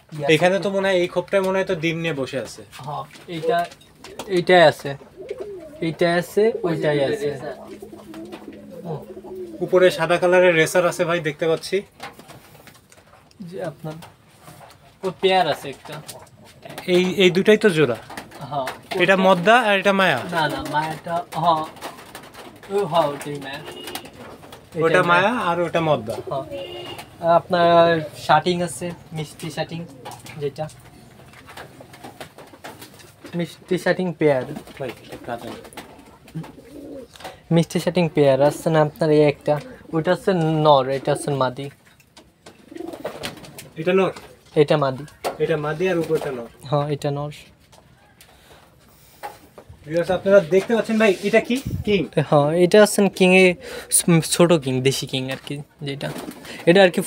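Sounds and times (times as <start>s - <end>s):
pigeons cooing: 3.3s - 10.4s, 20.2s - 33.3s, 34.5s - 41.6s, 42.3s - 44.6s, 53.3s - 54.1s, 56.0s - 56.7s.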